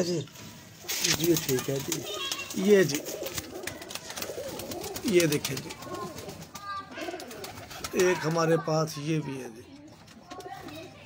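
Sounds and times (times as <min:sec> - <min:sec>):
pigeons cooing: 0:00.8 - 0:08.4.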